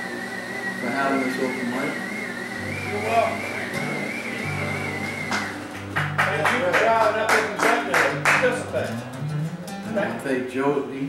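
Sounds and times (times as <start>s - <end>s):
strummed guitar strokes: 0.7s - 11.0s
guitar played softly: 0.8s - 11.0s
high wavering tone: 1.2s - 5.8s.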